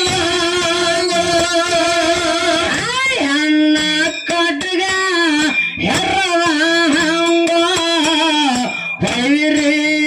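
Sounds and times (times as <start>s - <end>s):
amplified person singing: 0.0s - 10.0s
drum strokes: 0.0s - 10.0s.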